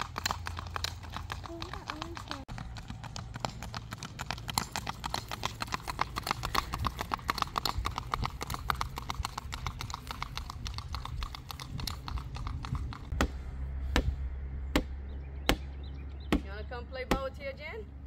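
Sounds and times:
horse hooves clip-clopping on asphalt: 0:00.0 - 0:13.2.

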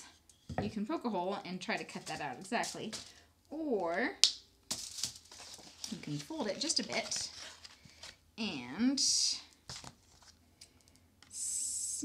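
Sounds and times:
rustling and scraping: 0:04.7 - 0:08.2, 0:09.6 - 0:10.4.

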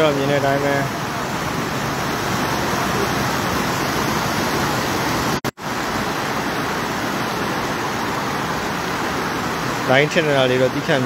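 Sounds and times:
floodwater rushing: 0:00.0 - 0:11.0.

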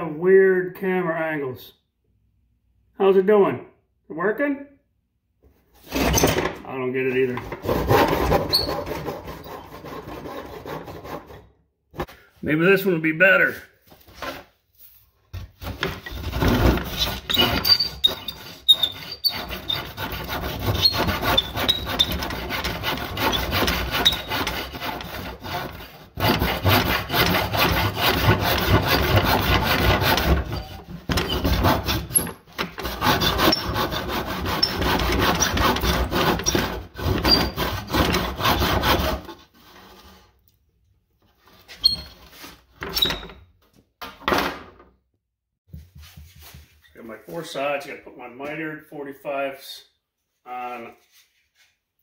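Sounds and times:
hand tool rasping wood: 0:07.5 - 0:11.4, 0:15.6 - 0:40.3.

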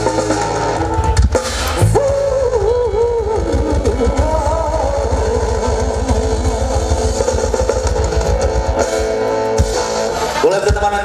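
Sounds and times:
live band playing: 0:00.0 - 0:11.0
person singing with vibrato: 0:01.7 - 0:07.7.

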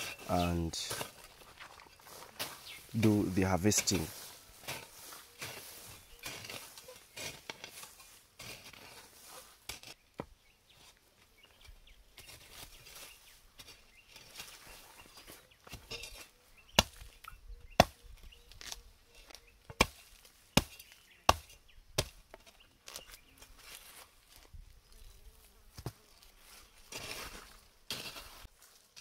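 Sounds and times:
hoe chopping into soil: 0:03.8 - 0:10.3, 0:15.7 - 0:18.0, 0:19.7 - 0:23.1, 0:26.9 - 0:28.4.

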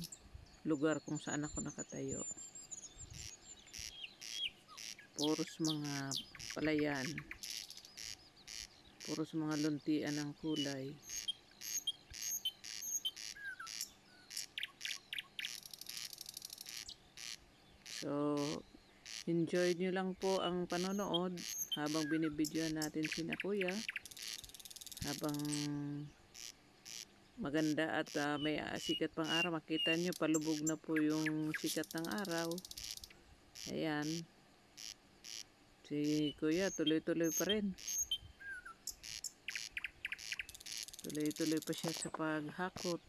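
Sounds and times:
bird trill: 0:00.0 - 0:34.1, 0:36.1 - 0:43.0
birds chirping: 0:00.0 - 0:34.2, 0:34.8 - 0:43.0.

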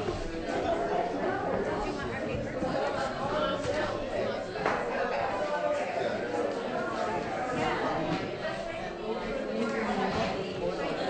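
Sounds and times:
hubbub of overlapping conversations: 0:00.0 - 0:11.0.

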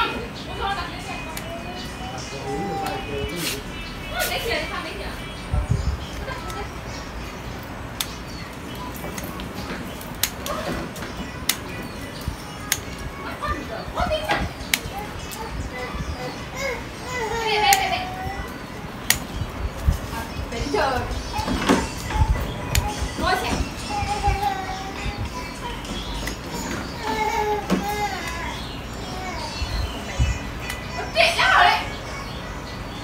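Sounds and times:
children calling and playing: 0:00.0 - 0:33.0.

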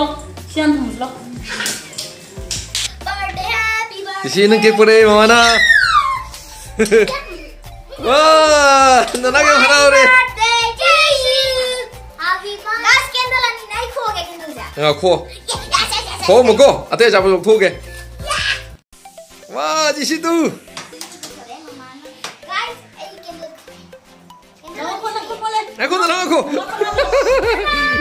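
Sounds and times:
child's voice: 0:03.0 - 0:04.8, 0:07.0 - 0:08.1, 0:09.4 - 0:16.3, 0:18.2 - 0:18.6, 0:21.0 - 0:23.8, 0:24.6 - 0:25.7.

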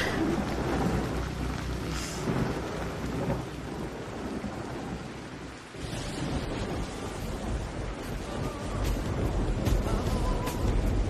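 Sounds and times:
low thunder rumbling: 0:00.0 - 0:11.0
steady rain falling: 0:00.0 - 0:11.0.

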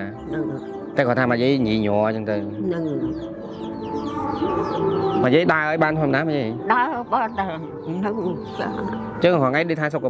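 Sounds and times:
soft background music: 0:00.0 - 0:10.0.

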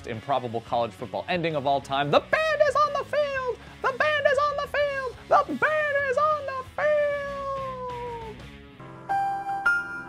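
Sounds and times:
music: 0:00.0 - 0:10.0
person shouting a high cry: 0:02.8 - 0:08.4.

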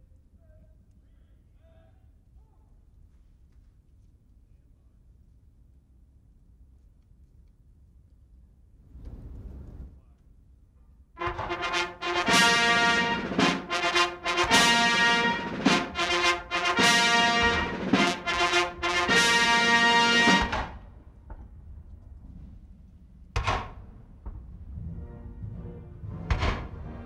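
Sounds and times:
brass band playing an anthem: 0:11.2 - 0:20.8.

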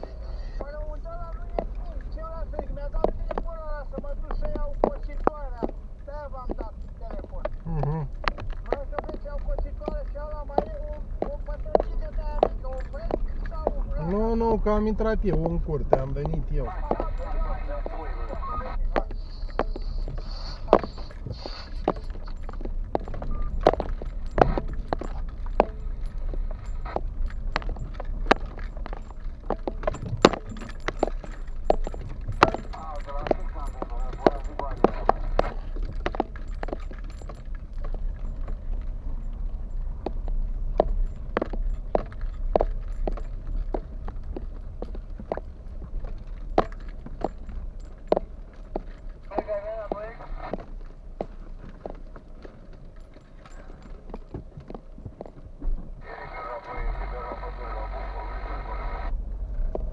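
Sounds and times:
car radio through speakers: 0:00.0 - 0:22.4, 0:32.3 - 0:35.6, 0:49.3 - 0:50.6, 0:56.0 - 0:59.1
rattling and clinking in car: 0:00.0 - 0:58.1
low road rumble: 0:00.0 - 0:59.9.

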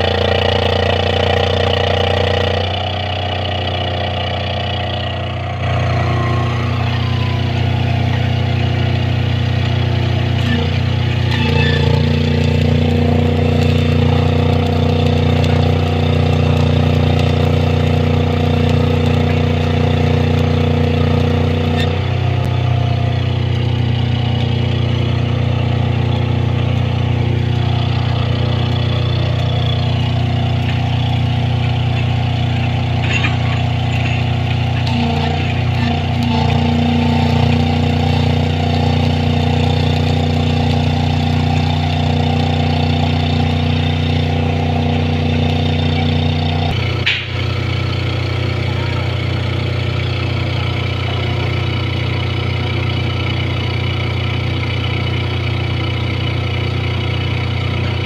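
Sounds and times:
construction machine engine running: 0:00.0 - 0:58.0.

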